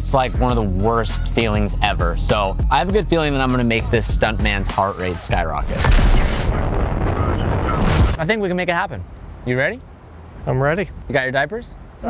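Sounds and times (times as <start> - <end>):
rocket engines rumbling: 5.3 - 8.5.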